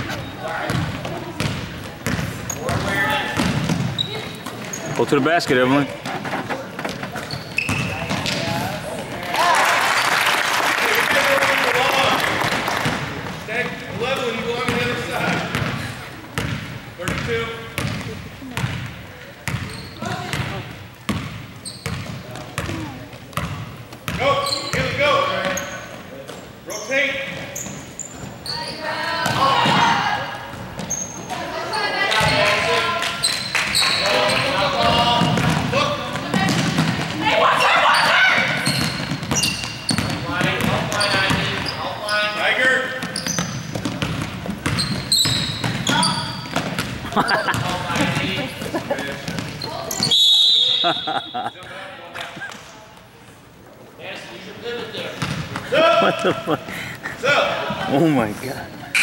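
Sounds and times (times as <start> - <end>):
basketball bouncing on hardwood floor: 16.4 - 20.5, 35.2 - 37.1, 43.0 - 48.3, 49.1 - 49.6
people shouting and talking: 22.2 - 43.8, 44.8 - 59.0.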